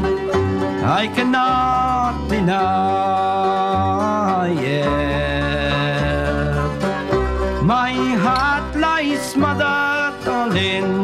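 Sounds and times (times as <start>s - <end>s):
plucked string accompaniment: 0.0s - 11.0s.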